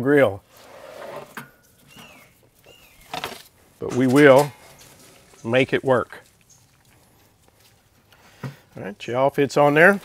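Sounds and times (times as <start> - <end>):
handling sounds: 1.2 - 8.8.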